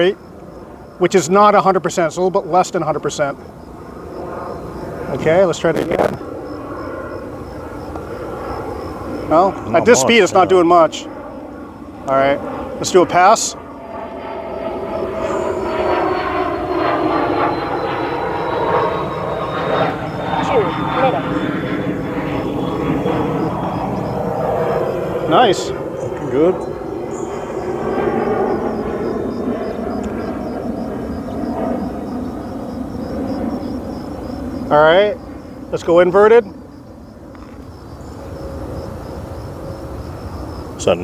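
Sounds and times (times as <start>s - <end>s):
electric model plane droning: 0.0s - 41.0s.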